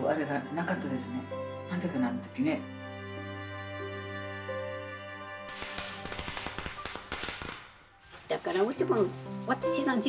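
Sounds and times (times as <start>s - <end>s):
firecrackers crackling: 5.5s - 9.5s.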